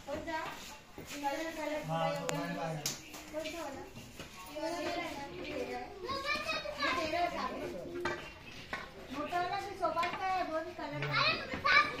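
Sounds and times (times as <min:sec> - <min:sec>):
people chattering: 0:00.0 - 0:12.0
children's voices: 0:03.8 - 0:08.3, 0:10.9 - 0:12.0.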